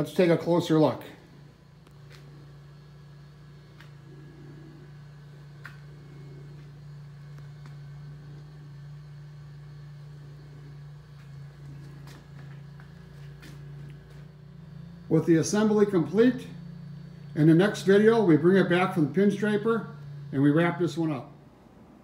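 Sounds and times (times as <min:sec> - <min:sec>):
workshop room hum: 0:00.0 - 0:22.0.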